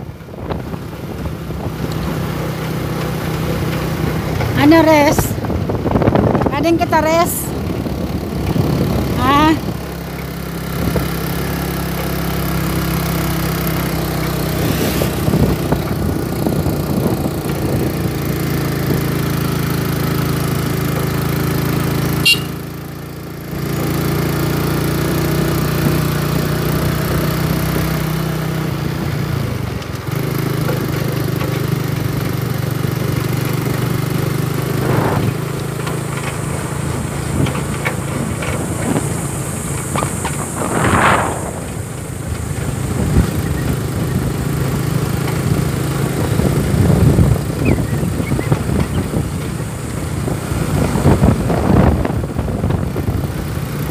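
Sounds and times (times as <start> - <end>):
small vehicle engine running: 0.0 - 53.9.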